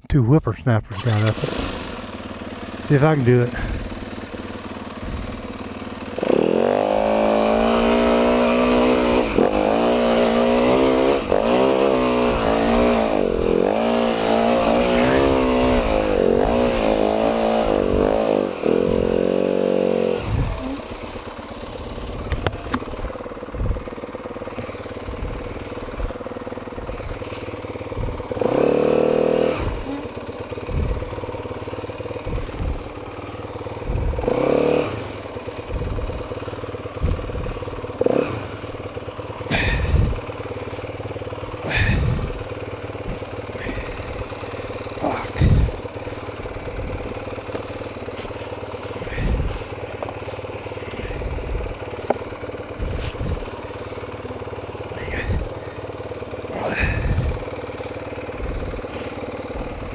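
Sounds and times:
dirt bike engine revving and idling: 0.0 - 59.9
knocks and clatter of bike handling: 40.6 - 55.5.

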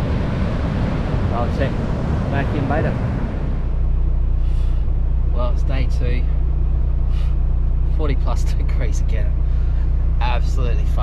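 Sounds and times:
wind noise: 0.0 - 4.0
vehicle engine idling: 0.0 - 11.0.

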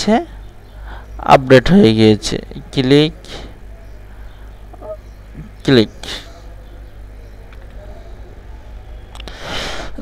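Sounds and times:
faint room noise: 0.0 - 10.0
steady low hum: 0.0 - 10.0.

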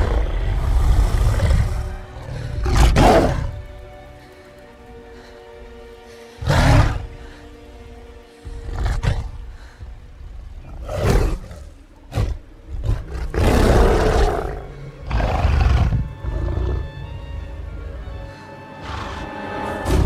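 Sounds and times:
orchestral film music: 0.0 - 20.0.

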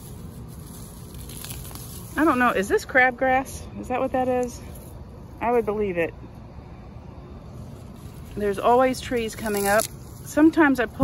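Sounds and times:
weeds being pulled up: 0.0 - 6.1, 7.4 - 11.0.

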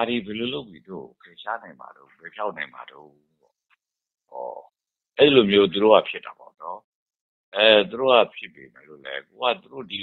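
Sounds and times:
man talking: 0.0 - 3.3, 4.3 - 6.9, 7.6 - 10.0.

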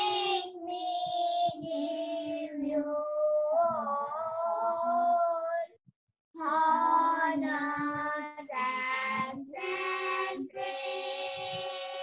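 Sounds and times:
children singing: 0.0 - 5.7, 6.4 - 12.0.

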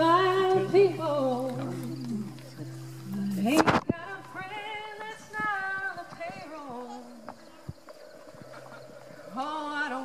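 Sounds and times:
woman singing: 0.0 - 7.5, 9.3 - 10.0.

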